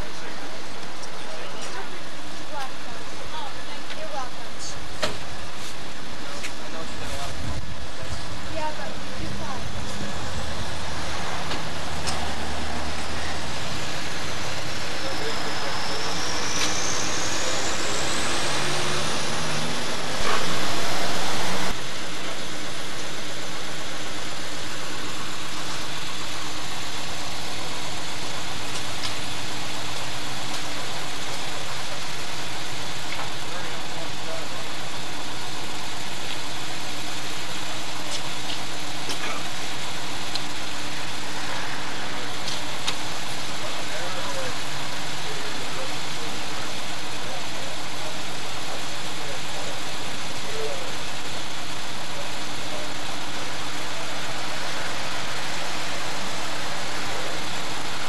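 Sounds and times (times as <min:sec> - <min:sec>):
indistinct voices: 0:00.0 - 0:58.0.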